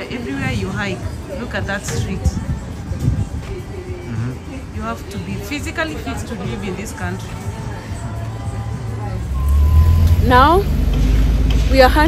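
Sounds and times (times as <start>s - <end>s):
background music: 0.0s - 12.0s
street noise rumble: 0.0s - 12.0s.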